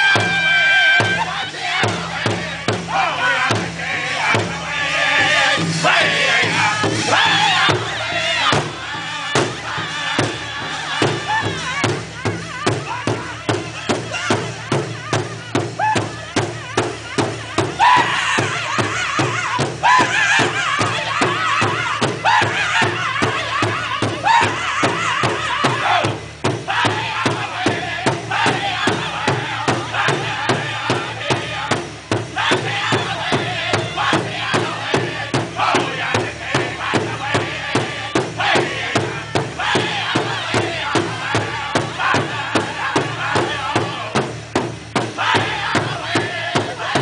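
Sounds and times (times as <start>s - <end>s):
bass drum steady beat: 0.0s - 47.0s
high-pitched group singing: 0.0s - 47.0s.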